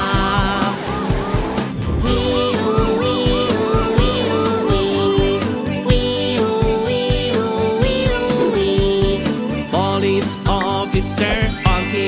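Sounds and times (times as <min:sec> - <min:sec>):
upbeat children's song: 0:00.0 - 0:12.0
cartoon car engine rising in pitch: 0:01.0 - 0:08.9.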